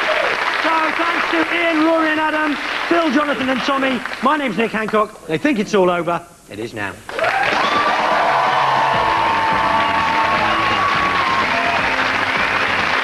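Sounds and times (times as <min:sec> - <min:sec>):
audience applause: 0:00.0 - 0:04.6, 0:07.1 - 0:13.0.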